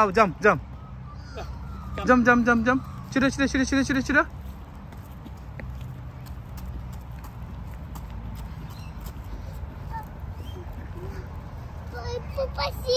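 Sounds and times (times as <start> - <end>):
footsteps on asphalt: 2.8 - 12.9.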